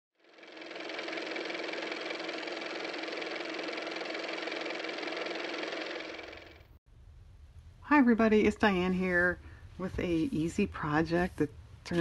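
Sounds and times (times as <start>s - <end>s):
machine running with fast rattle: 0.2s - 6.8s.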